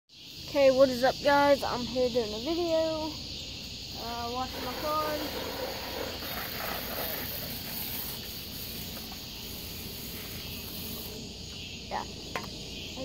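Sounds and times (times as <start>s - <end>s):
insect chorus chirring: 0.1s - 13.0s.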